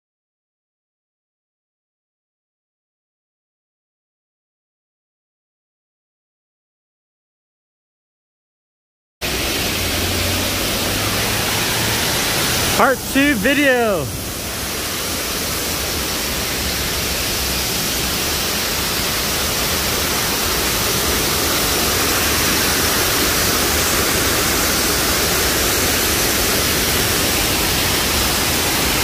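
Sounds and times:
waterfall splashing into churning water: 9.2s - 29.0s.

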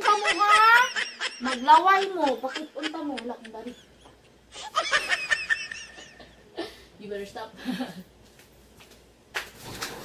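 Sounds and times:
person giggling: 0.1s - 6.9s.

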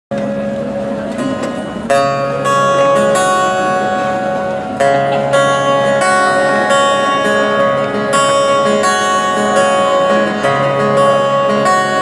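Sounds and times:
acoustic guitar chords: 0.1s - 12.0s.

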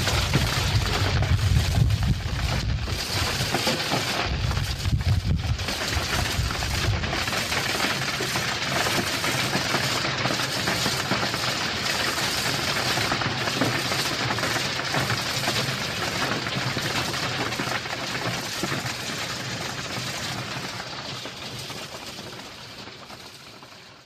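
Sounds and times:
industrial crackling and rattling: 0.0s - 24.0s.

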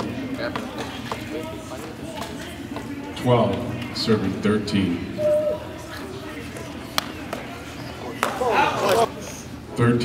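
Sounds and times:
voices in a hall: 0.0s - 10.0s
high squeak: 5.2s - 5.8s.

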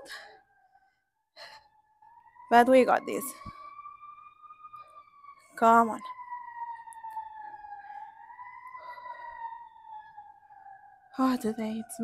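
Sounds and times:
emergency siren wailing: 0.0s - 12.0s.

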